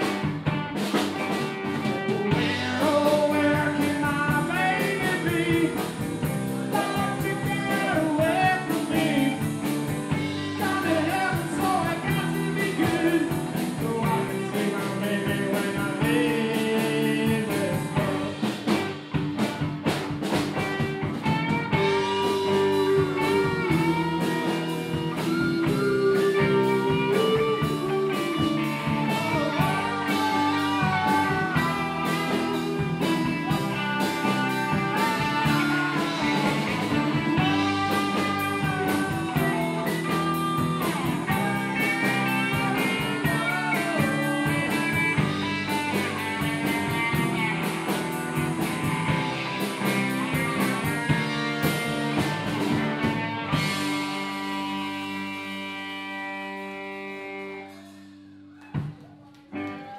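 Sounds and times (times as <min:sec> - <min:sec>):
bass guitar: 0:00.0 - 0:59.9
drum kit: 0:00.0 - 0:59.9
electric guitars: 0:00.0 - 0:59.9
pitch-bending melody line: 0:21.7 - 0:48.0.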